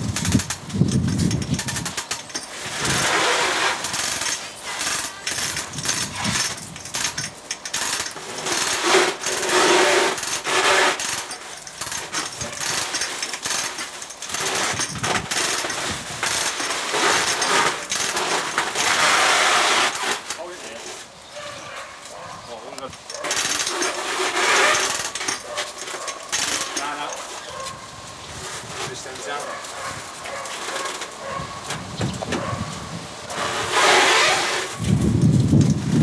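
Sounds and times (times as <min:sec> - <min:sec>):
metallic tool clicking and clattering: 0:03.9 - 0:09.3, 0:22.9 - 0:27.3.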